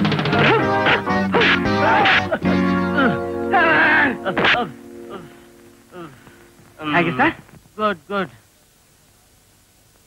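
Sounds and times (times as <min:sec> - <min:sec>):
film background music: 0:00.0 - 0:05.7.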